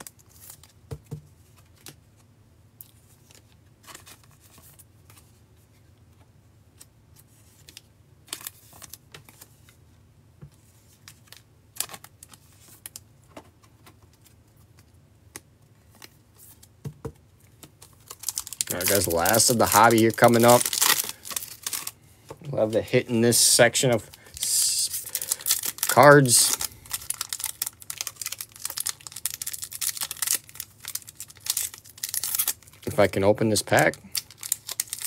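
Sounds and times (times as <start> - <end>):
cards scraping: 18.0 - 27.5.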